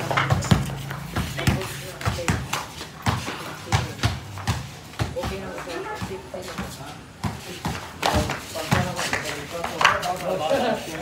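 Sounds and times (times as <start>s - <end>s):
basketball bouncing on concrete: 0.0s - 10.2s.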